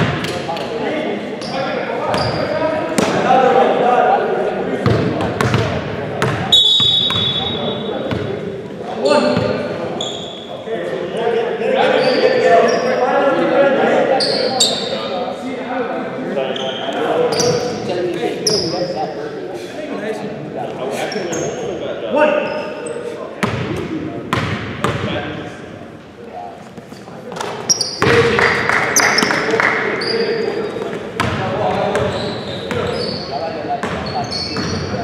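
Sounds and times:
players' voices: 0.0 - 35.0
sneaker squeaks: 1.4 - 2.6, 6.5 - 8.2, 9.1 - 10.7, 11.8 - 13.0, 14.2 - 15.0, 16.5 - 19.0, 21.0 - 21.8, 22.4 - 23.1, 26.7 - 28.3, 29.0 - 35.0
basketball bouncing on court: 4.8 - 7.5.

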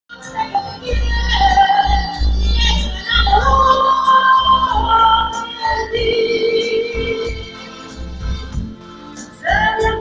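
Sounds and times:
woman singing into microphone: 0.1 - 7.8, 9.2 - 10.0
backing track with heavy bass: 6.9 - 10.0.

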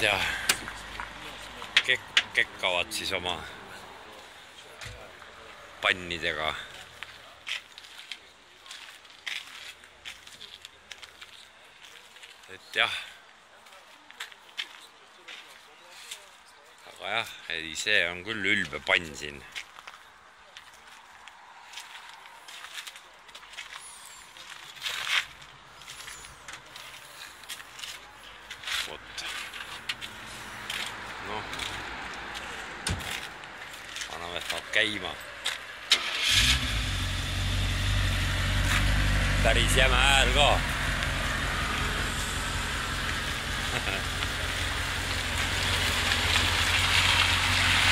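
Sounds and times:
distant people talking: 0.0 - 17.4
footsteps on asphalt: 0.2 - 1.8, 6.6 - 12.5, 13.6 - 16.4, 19.4 - 35.8
low engine hum: 36.3 - 47.9.

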